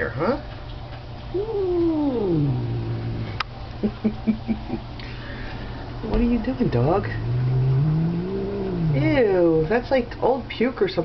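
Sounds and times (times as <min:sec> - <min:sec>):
cat growling yowl: 0:01.3 - 0:03.4, 0:06.3 - 0:09.4.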